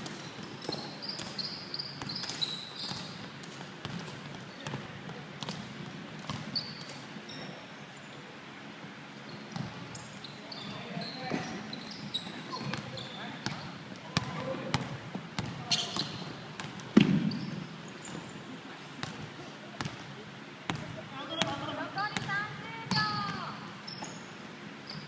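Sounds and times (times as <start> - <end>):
shoe squeaks: 0.2 - 3.2, 6.5 - 7.6, 9.2 - 13.8, 15.6 - 16.4, 17.2 - 18.4, 23.8 - 25.0
basketball bouncing on hardwood floor: 14.2 - 17.5.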